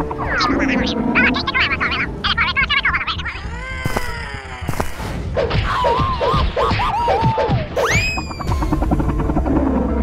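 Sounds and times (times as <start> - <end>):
high wavering creature squeals: 5.6 - 8.8
long falling whistle: 7.8 - 8.8.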